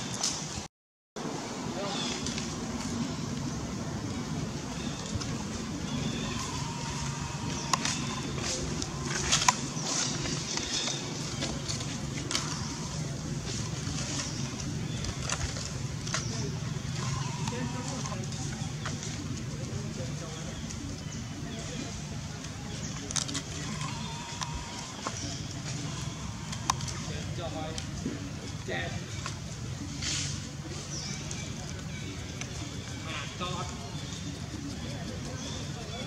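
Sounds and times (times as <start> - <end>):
outdoor ambience: 0.0 - 36.0.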